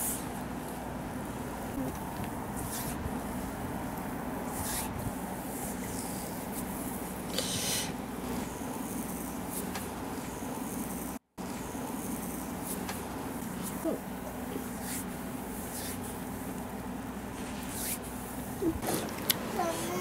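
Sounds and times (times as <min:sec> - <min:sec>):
low background hum: 0:00.0 - 0:20.0.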